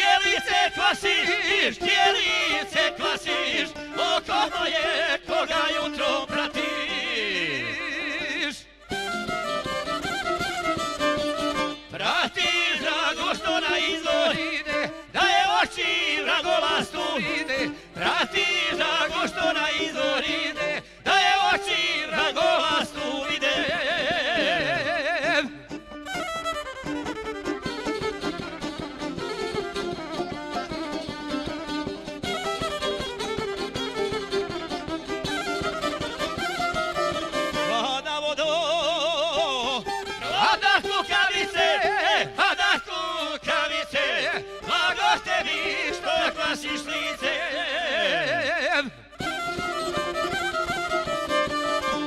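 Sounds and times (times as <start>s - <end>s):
violin melody: 0.0s - 48.3s, 49.0s - 52.0s
lutes strumming fast: 8.9s - 47.4s, 48.8s - 52.0s.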